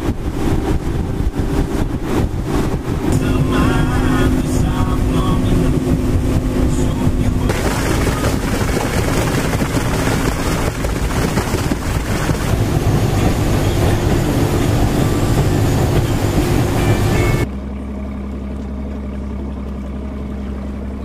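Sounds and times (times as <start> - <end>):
water rushing along hull: 0.0 - 17.5
outboard motor: 0.0 - 21.0
wind: 0.0 - 21.0.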